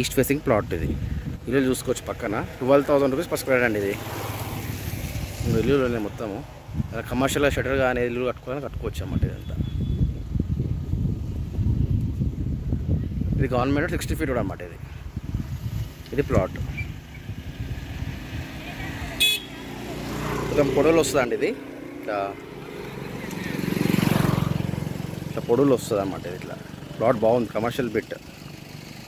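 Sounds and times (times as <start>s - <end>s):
wind buffeting microphone: 0.0s - 2.6s, 4.3s - 8.1s, 8.7s - 19.2s
motorcycle engine passing by: 3.0s - 6.9s, 15.3s - 29.0s.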